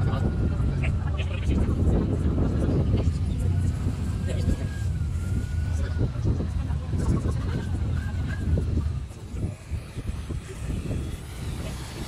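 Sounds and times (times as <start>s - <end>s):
boat engine rumbling: 0.0s - 12.0s.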